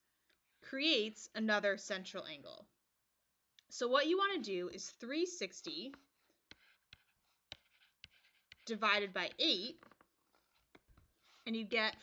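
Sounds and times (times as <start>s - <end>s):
stylus scratching on tablet: 4.5s - 12.0s
stylus ticking on tablet: 5.8s - 9.9s.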